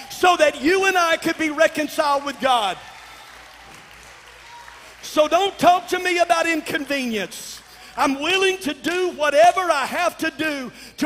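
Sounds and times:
congregation applauding: 0:00.0 - 0:09.7.

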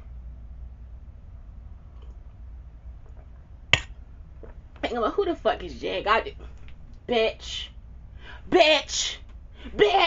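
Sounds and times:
low steady hum: 0:00.0 - 0:10.0
sharp snap: 0:03.7 - 0:04.0
woman speaking: 0:04.8 - 0:06.4, 0:07.0 - 0:07.8, 0:08.5 - 0:10.0.

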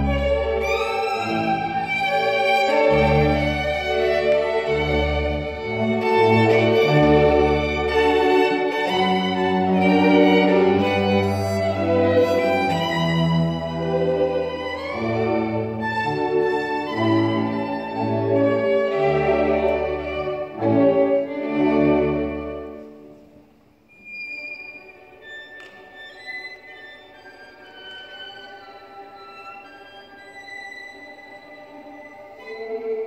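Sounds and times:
violin with string orchestra: 0:00.0 - 0:23.3, 0:23.9 - 0:33.0.

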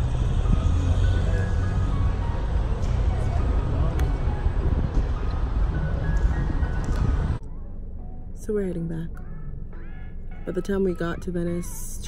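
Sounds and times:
car road and engine rumble: 0:00.0 - 0:12.0
faint music: 0:00.0 - 0:12.0.

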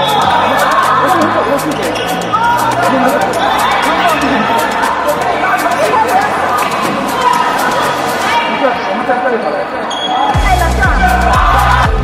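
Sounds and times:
voices calling out in sports hall: 0:00.0 - 0:12.0
music with deep thudding beat: 0:10.4 - 0:12.0.

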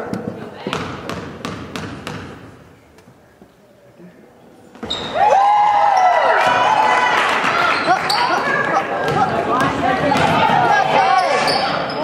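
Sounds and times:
shoe squeaks: 0:04.8 - 0:05.2, 0:11.0 - 0:12.0.

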